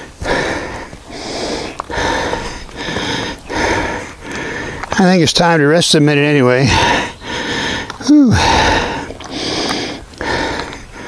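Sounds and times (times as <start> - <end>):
man breathing hard: 0.0 - 4.9, 6.6 - 11.0.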